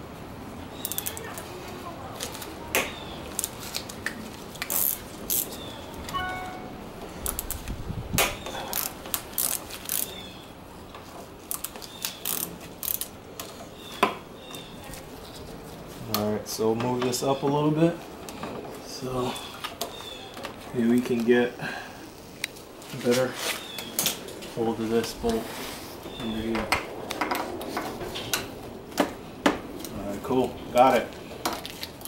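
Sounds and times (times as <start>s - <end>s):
ringing squeak: 6.1s - 6.8s.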